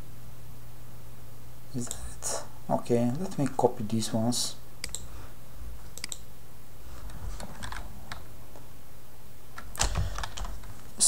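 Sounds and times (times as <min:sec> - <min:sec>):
computer keyboard keystrokes: 0:04.8 - 0:05.1, 0:06.0 - 0:06.2, 0:07.4 - 0:08.2, 0:09.6 - 0:10.8
mouse clicks: 0:04.8 - 0:05.1, 0:06.0 - 0:06.2.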